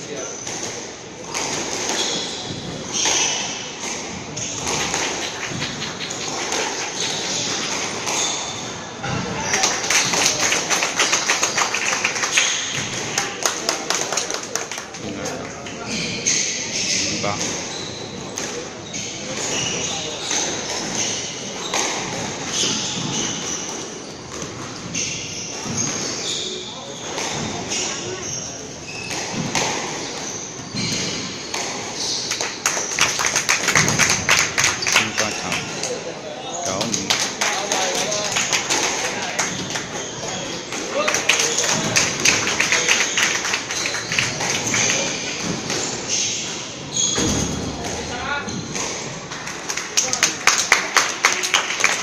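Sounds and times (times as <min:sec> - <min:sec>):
squash balls hitting walls: 0:00.4 - 0:14.6, 0:17.3 - 0:26.3, 0:26.9 - 0:35.9, 0:37.2 - 0:50.3.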